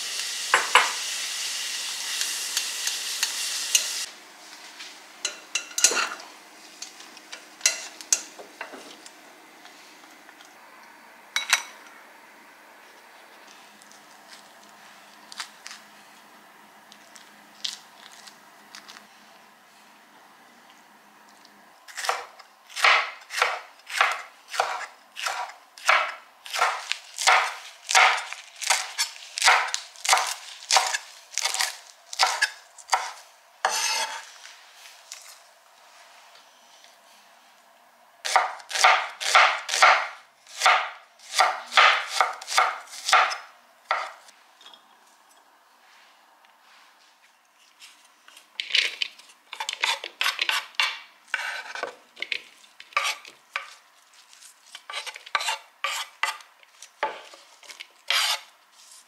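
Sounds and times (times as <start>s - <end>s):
knife chopping on wooden board: 22.0s - 34.2s, 38.3s - 44.2s.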